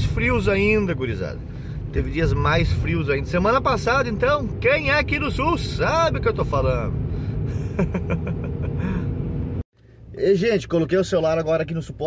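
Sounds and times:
engine and road noise in truck cab: 0.0s - 12.0s.

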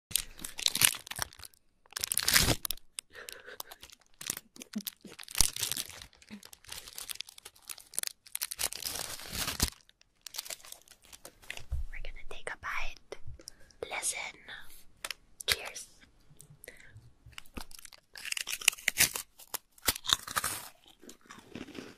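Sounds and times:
food wrapper crinkling and tearing: 0.1s - 11.6s, 17.3s - 21.9s.

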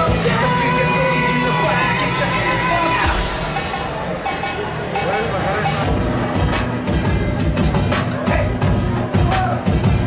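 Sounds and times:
bass beat: 0.0s - 10.0s
dance music: 0.0s - 10.0s.

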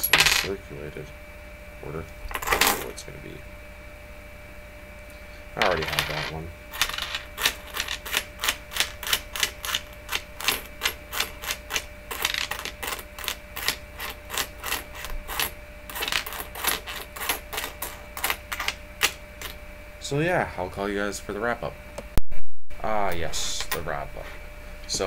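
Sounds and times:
coins tapping on wooden table: 0.0s - 0.5s, 5.6s - 8.2s, 12.1s - 13.3s.

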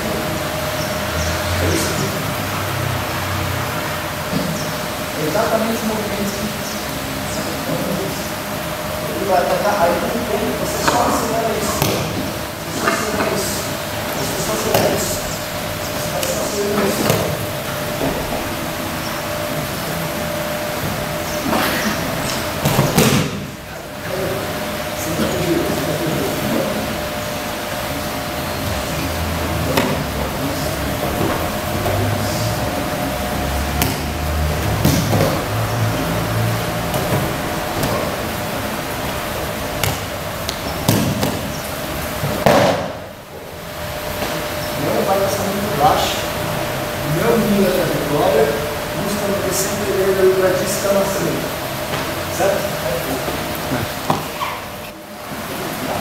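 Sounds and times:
steady hum: 0.0s - 56.0s.

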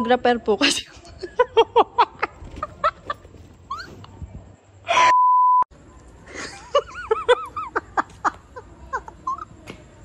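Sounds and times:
pure tone bleep: 5.0s - 5.7s.

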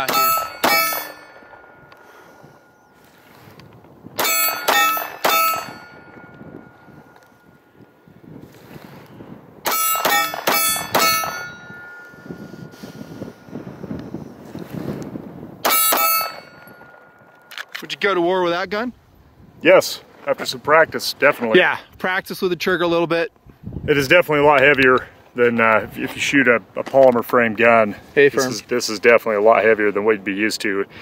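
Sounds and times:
metallic ringing of steel target: 0.0s - 2.7s, 4.2s - 7.1s, 9.6s - 12.7s, 15.6s - 17.5s.

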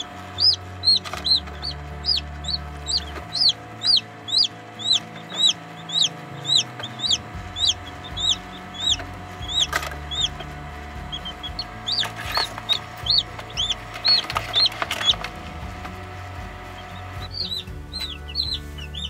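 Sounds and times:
chicks peeping: 0.0s - 19.0s.

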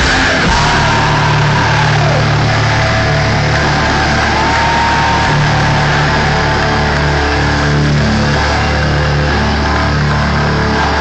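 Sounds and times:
live hardcore punk band: 0.0s - 11.0s.

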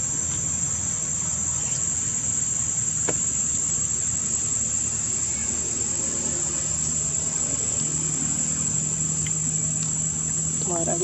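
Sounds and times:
insects chirping: 0.0s - 11.0s
low steady hum: 0.0s - 11.0s.

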